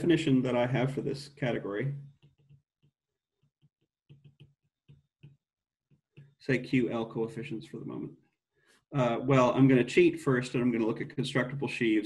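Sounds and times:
stylus tapping on glass screen: 0:04.1 - 0:05.4.

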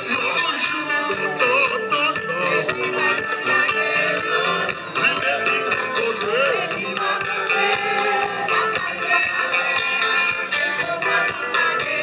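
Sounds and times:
electric guitars: 0:00.0 - 0:12.0
keyboard: 0:00.0 - 0:12.0
person singing: 0:00.0 - 0:12.0.

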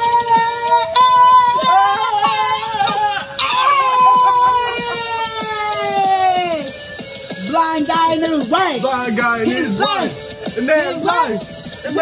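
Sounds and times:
song with steady beat: 0:00.0 - 0:12.0.

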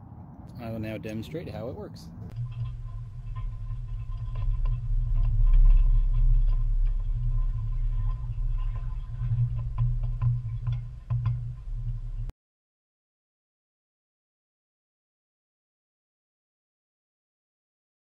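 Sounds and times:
boat trailer rumbling on ramp: 0:02.1 - 0:12.3.

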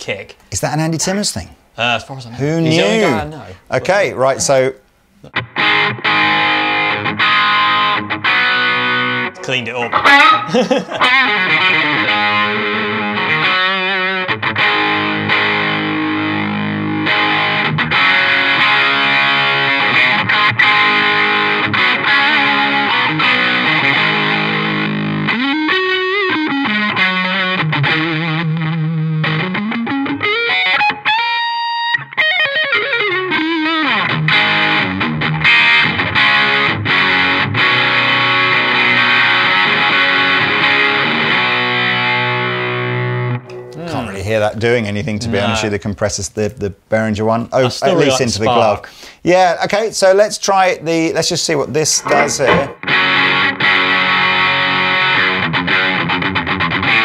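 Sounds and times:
overdriven electric guitar lead: 0:05.2 - 0:43.9, 0:52.0 - 0:57.0.

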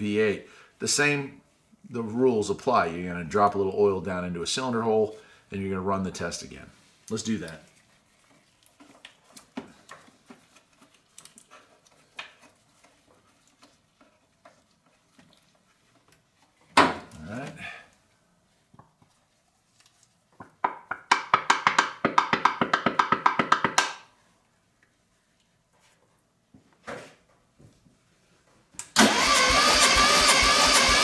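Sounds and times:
hose being handled: 0:06.9 - 0:17.6, 0:18.5 - 0:20.5.

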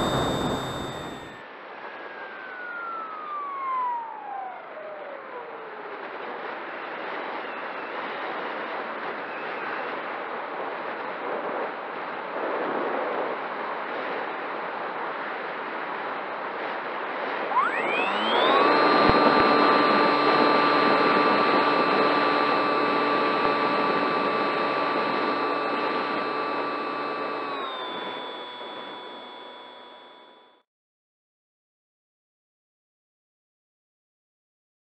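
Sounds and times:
electric motor propeller whine: 0:00.0 - 0:01.4, 0:17.4 - 0:30.6.

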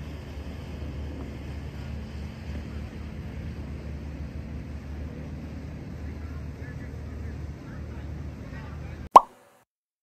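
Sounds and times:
wind and lakeshore rumble: 0:00.0 - 0:09.1
pop sound effect dropping in pitch: 0:09.2 - 0:09.4.

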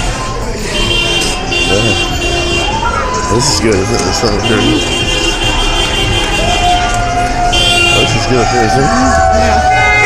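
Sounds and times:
street noise: 0:00.0 - 0:10.0
car horn blaring: 0:00.6 - 0:02.9, 0:04.1 - 0:10.0
people whooping and shouting: 0:02.6 - 0:04.5, 0:05.4 - 0:10.0.

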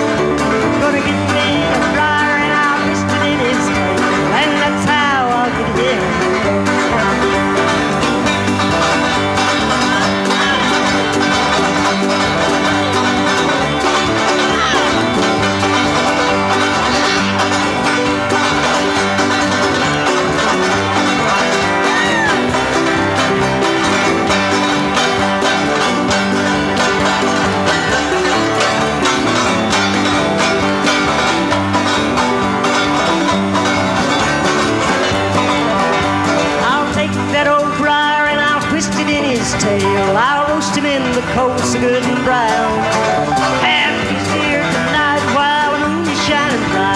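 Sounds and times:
banjo strumming: 0:00.0 - 0:46.9
bluegrass backing band: 0:00.0 - 0:46.9.

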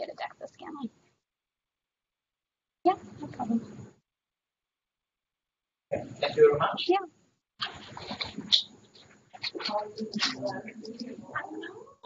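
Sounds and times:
indistinct voice over call line: 0:09.4 - 0:12.0.

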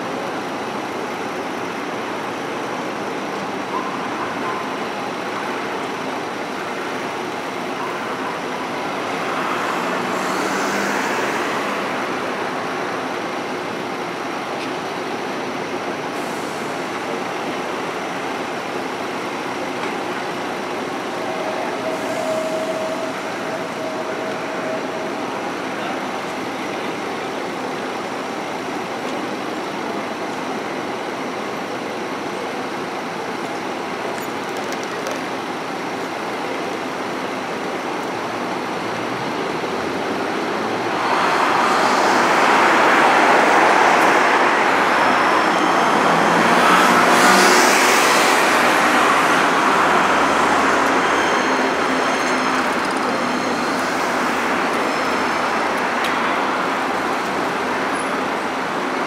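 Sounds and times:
city traffic noise: 0:00.0 - 0:59.0
passing vehicle: 0:08.9 - 0:12.9, 0:38.8 - 0:58.8
steady high tone: 0:19.2 - 0:28.2, 0:39.6 - 0:58.4.

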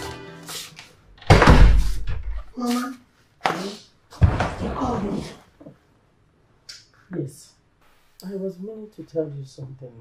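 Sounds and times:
background music: 0:00.0 - 0:00.9
door slamming shut: 0:01.2 - 0:02.4.

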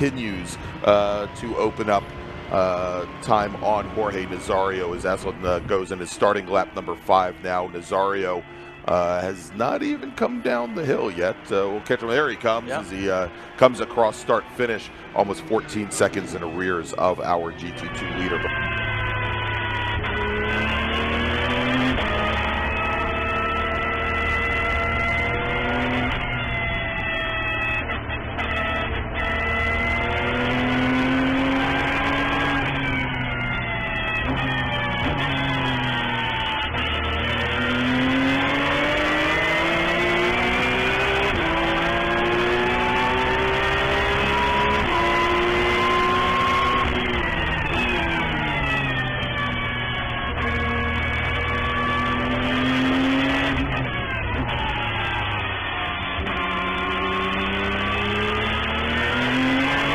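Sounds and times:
race car engine revving: 0:00.0 - 0:59.9.

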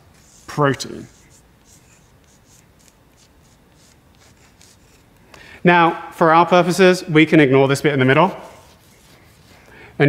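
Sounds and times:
chalk scratching on blackboard: 0:00.0 - 0:05.1, 0:08.3 - 0:09.7.

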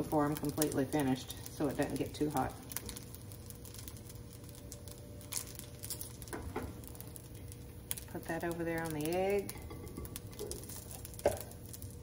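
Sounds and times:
light clicks and crackles: 0:00.0 - 0:12.0.

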